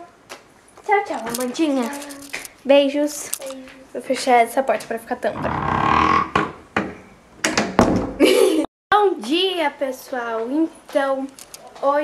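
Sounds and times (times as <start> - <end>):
door closing thump: 5.4 - 8.2.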